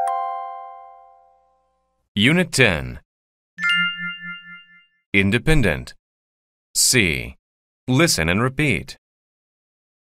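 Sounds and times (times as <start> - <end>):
electronic ding chime: 3.6 - 5.0.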